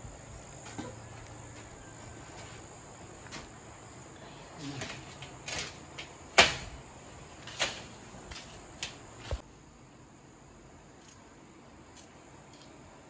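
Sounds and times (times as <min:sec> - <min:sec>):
crickets chirring: 0:00.0 - 0:13.0.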